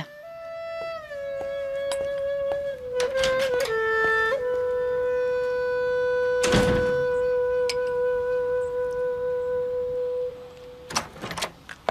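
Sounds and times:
woodwind holding long note: 0:00.0 - 0:11.1.

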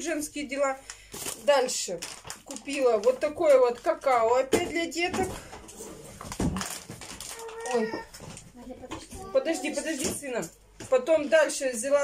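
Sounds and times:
small child whining: 0:07.3 - 0:08.2.

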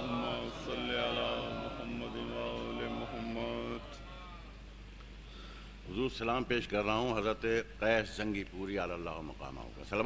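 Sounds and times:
voice chanting: 0:00.0 - 0:04.5
mains hum: 0:00.0 - 0:10.0
tape hiss: 0:00.0 - 0:10.0.

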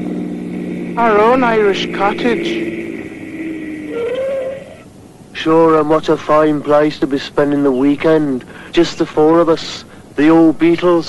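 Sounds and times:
engine-like hum: 0:00.0 - 0:11.0
short wavering tone: 0:02.9 - 0:04.8.

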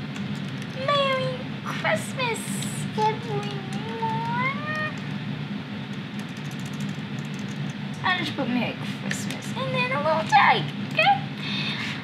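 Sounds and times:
low background hum: 0:00.0 - 0:12.0
laptop keyboard key clicks: 0:06.2 - 0:07.7.

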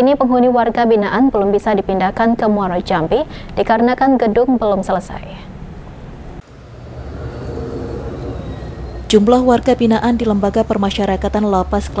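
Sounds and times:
low rumble of traffic: 0:04.8 - 0:12.0.

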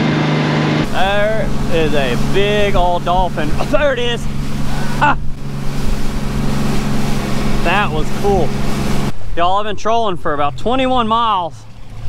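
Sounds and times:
outboard motor droning: 0:00.0 - 0:12.0
water rushing along hull: 0:00.0 - 0:12.0
wind: 0:00.0 - 0:12.0.

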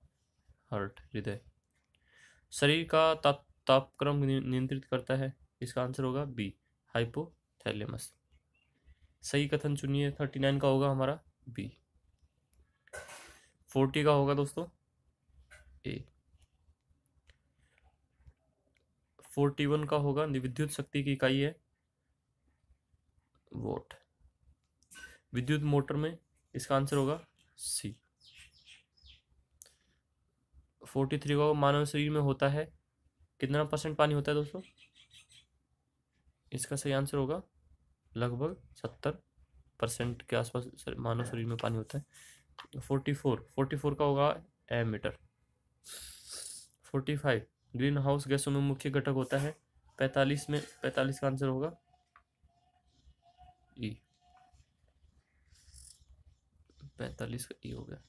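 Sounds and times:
man speaking: 0:00.7 - 0:01.5, 0:02.5 - 0:08.2, 0:09.2 - 0:11.8, 0:13.7 - 0:14.8, 0:15.8 - 0:16.2, 0:19.2 - 0:21.6, 0:23.5 - 0:24.0, 0:25.3 - 0:28.0, 0:30.8 - 0:32.8, 0:33.4 - 0:34.7, 0:36.5 - 0:37.5, 0:38.1 - 0:39.2, 0:39.8 - 0:45.2, 0:46.4 - 0:52.1, 0:52.9 - 0:54.7, 0:56.7 - 0:58.0.

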